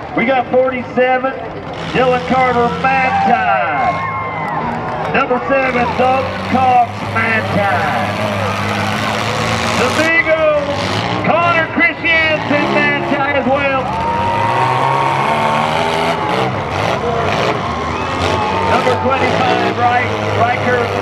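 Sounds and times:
car engines rumbling: 0.0 - 21.0.

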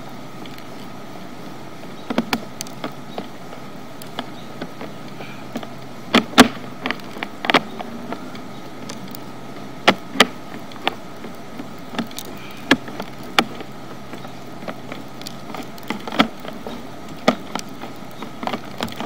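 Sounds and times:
steady hum with high tone: 0.0 - 19.0
cable clicking and knocking: 9.8 - 19.0.

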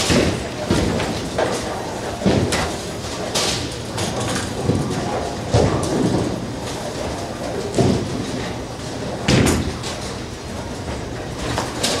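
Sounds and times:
bowling balls rolling rumble: 0.0 - 12.0.

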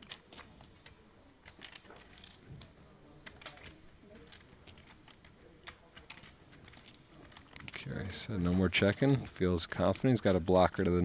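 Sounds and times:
poker chips clicking: 0.0 - 10.9.

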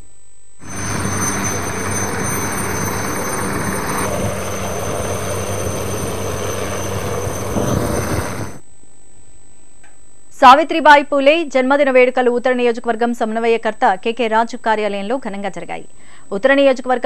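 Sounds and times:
helicopter rotor and engine: 0.6 - 8.6.

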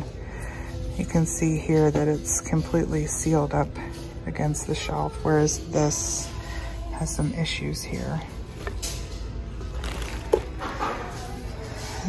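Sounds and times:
low store rumble: 0.0 - 12.0.

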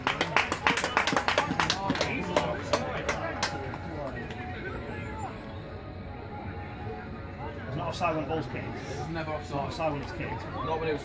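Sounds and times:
spectators clapping: 0.0 - 4.4
faint voices and shouts: 0.0 - 11.0.

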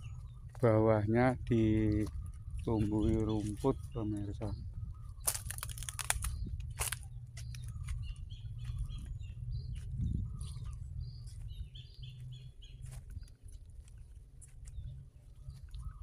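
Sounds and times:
small birds chirping: 0.0 - 16.0
steady low rumble: 0.0 - 16.0
sharp clicks: 5.2 - 7.7.

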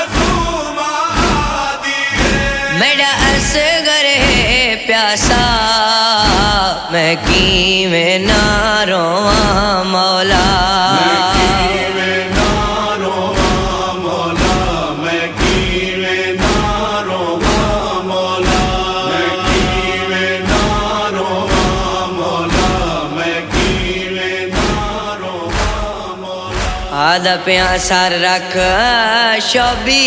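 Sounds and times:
chorus chanting mournful lament: 0.0 - 30.0
steady beat: 0.0 - 30.0.

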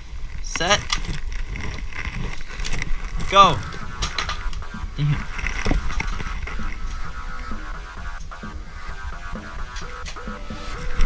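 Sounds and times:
microphone rubbing and handling noise: 0.0 - 11.0.

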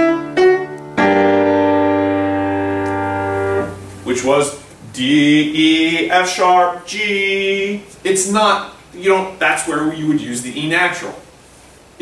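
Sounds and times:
piano melody and chord: 0.0 - 5.0.

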